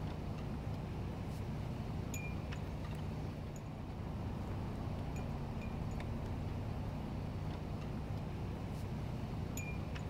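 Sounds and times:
wind rumble: 0:00.0 - 0:10.0
faint high clinks: 0:02.1 - 0:03.8, 0:05.1 - 0:06.2, 0:09.5 - 0:10.0.

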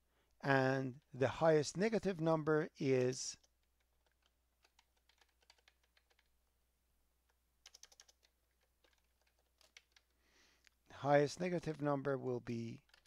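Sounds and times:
keyboard keystrokes: 0:03.4 - 0:06.3, 0:07.6 - 0:10.1, 0:12.8 - 0:13.0.

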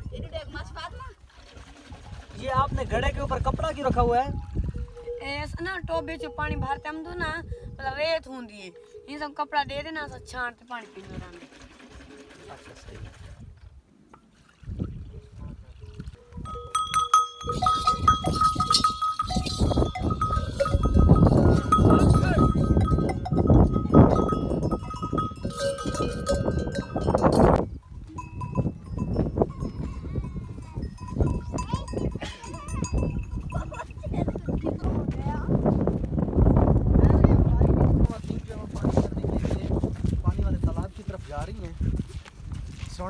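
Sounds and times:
cattle bells clinking: 0:03.4 - 0:13.3, 0:16.2 - 0:34.9.

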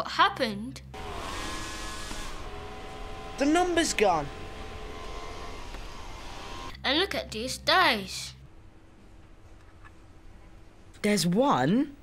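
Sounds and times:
electric fan motors humming: 0:00.9 - 0:07.0.

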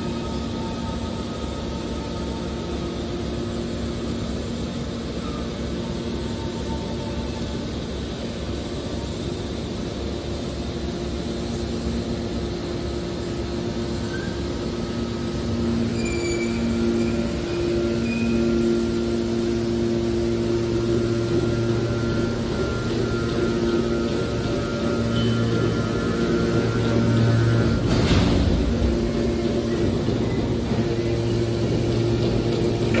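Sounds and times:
hydraulic baler humming: 0:00.0 - 0:33.0
rush of machine noise: 0:00.0 - 0:33.0.

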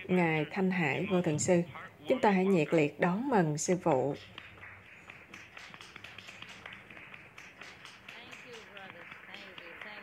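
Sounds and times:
people clapping: 0:03.8 - 0:10.0.

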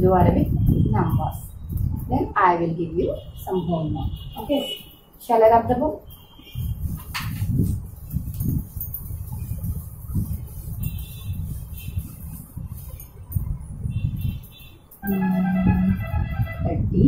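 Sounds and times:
chalkboard being wiped with duster: 0:09.3 - 0:13.1.

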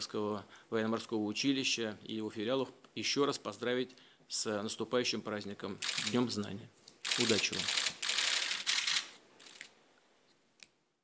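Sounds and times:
camera shutters clicking: 0:05.8 - 0:06.2, 0:07.0 - 0:09.7.

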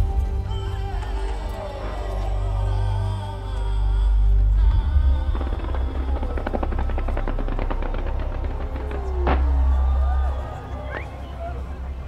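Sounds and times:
steady low rumble: 0:00.0 - 0:12.0
fireworks crackling and banging: 0:04.6 - 0:11.2.

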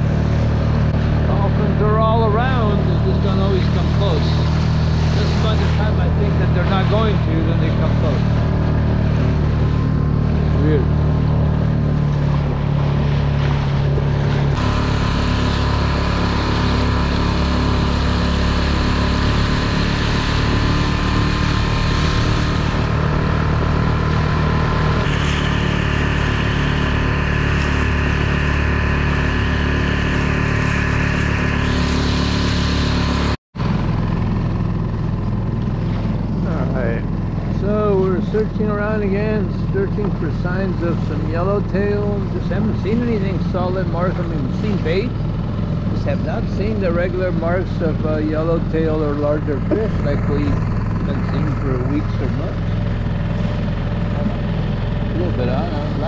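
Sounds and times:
outboard motor running: 0:00.0 - 0:56.0
water rushing along hull: 0:00.0 - 0:56.0.

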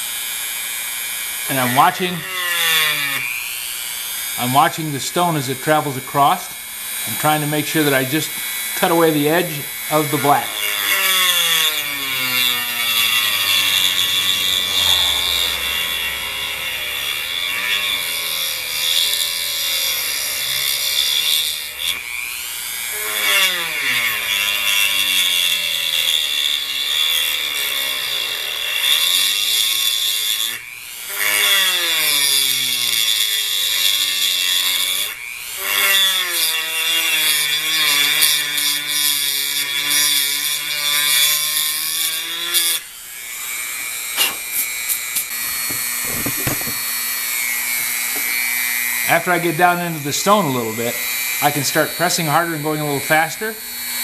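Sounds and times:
rotary tool grinding stone: 0:00.0 - 0:54.0
steady hum: 0:11.8 - 0:20.1.

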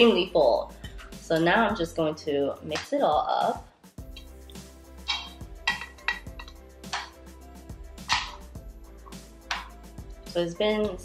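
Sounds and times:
chopsticks clinking on ceramic bowl: 0:05.1 - 0:07.2.

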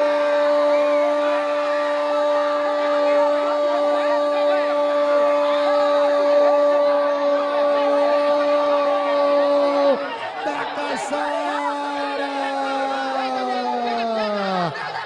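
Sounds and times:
commentator long held shout: 0:00.0 - 0:14.8
crowd voices: 0:00.0 - 0:15.0.

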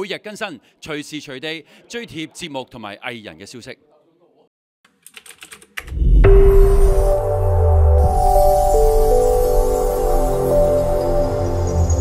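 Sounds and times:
keystroke clicks: 0:05.0 - 0:06.0
deep music bed: 0:05.9 - 0:12.0.

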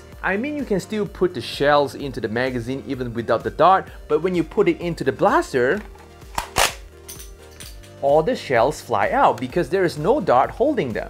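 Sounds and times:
plastic magazine snapping in: 0:05.8 - 0:06.8.

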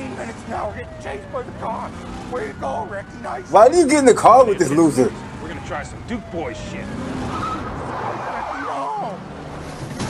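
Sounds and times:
police siren wailing: 0:00.0 - 0:09.3.

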